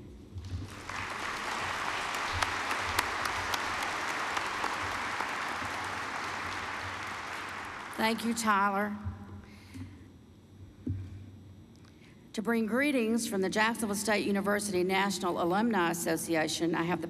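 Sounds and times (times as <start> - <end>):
audience applauding: 0.5 - 8.6.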